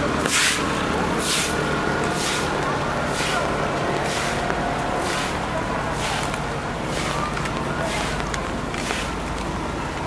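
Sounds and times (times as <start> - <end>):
footsteps on wet pavement: 0.0 - 10.0
large vehicle engine idling: 0.0 - 10.0
people talking: 0.0 - 10.0.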